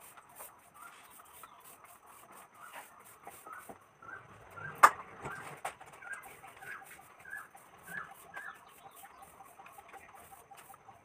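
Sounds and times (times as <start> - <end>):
chickens clucking: 4.6 - 11.0.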